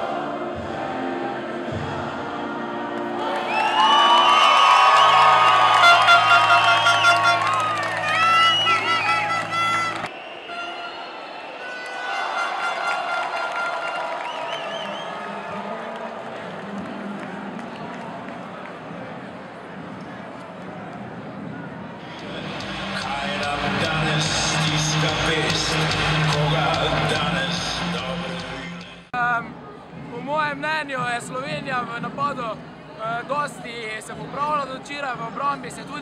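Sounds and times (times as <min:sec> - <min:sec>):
crowd singing and cheering: 0:00.0 - 0:30.2
music: 0:00.0 - 0:36.0
crowd murmur: 0:14.7 - 0:28.9.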